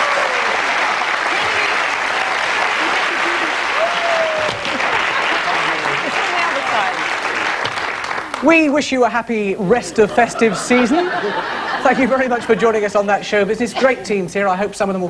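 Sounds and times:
audience applauding: 0.0 - 8.7.

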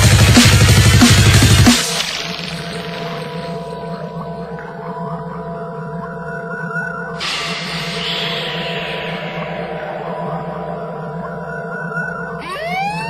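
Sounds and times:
sustained electronic drones: 0.0 - 13.0
wavering high synth tone: 2.7 - 13.0
hissing swell: 7.2 - 12.6.

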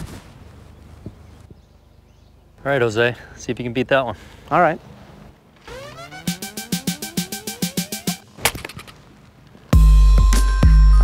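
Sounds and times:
rising whine with ticking: 5.6 - 8.3
bat cracking against ball: 8.2 - 9.2.

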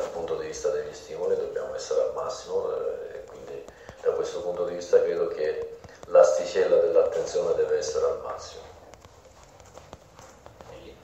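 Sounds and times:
man talking: 0.0 - 8.8.

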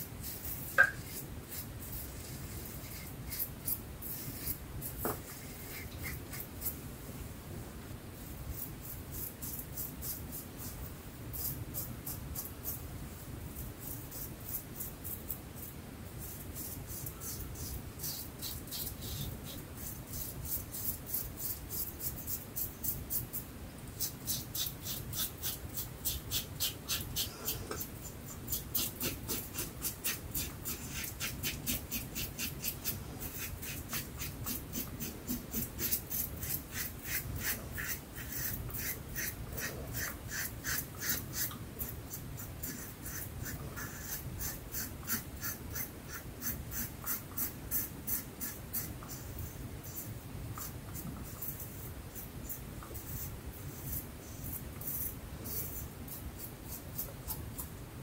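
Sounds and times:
razor scraping stubble: 0.2 - 6.8, 13.6 - 57.7.

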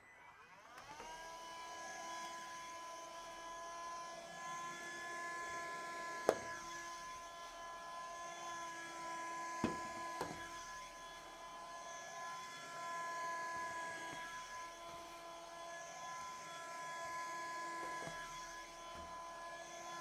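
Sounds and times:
window vacuum whining: 0.0 - 20.0.

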